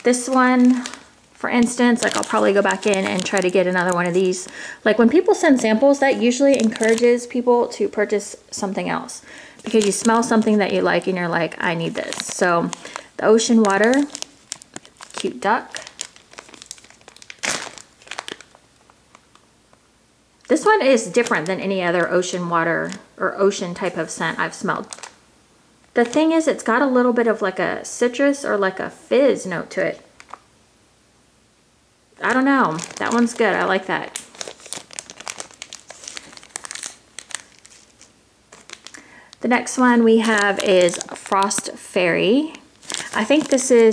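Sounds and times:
plastic bag crinkling: 0:00.0 - 0:19.4, 0:20.5 - 0:23.1, 0:23.8 - 0:25.2, 0:25.9 - 0:26.4, 0:30.2 - 0:30.4, 0:32.2 - 0:43.9.

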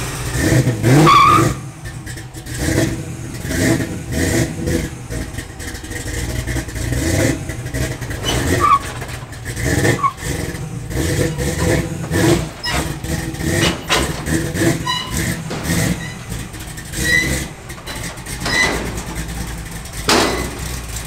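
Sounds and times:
car engine running at low speed: 0:00.0 - 0:21.0.

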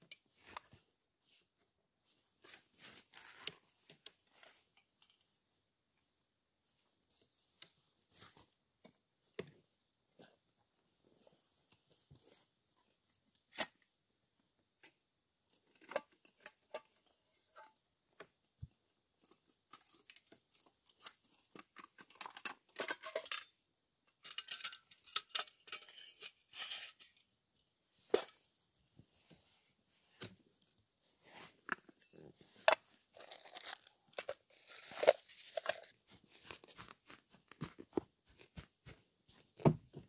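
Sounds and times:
plastic bag rustling: 0:33.1 - 0:36.8.

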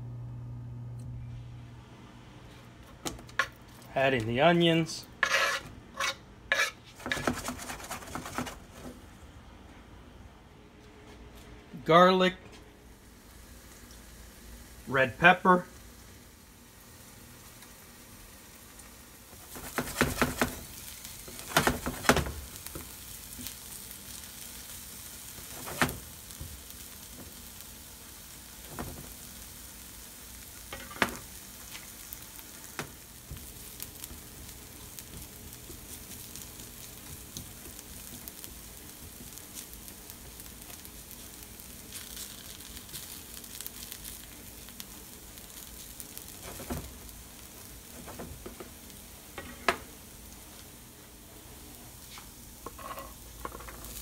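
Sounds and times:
onions sizzling in butter: 0:05.2 - 0:08.6, 0:12.9 - 0:54.0.

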